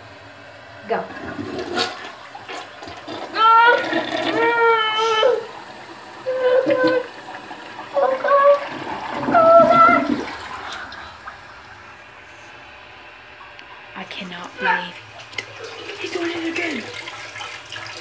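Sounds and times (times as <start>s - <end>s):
toilet flushing: 0.0s - 18.0s.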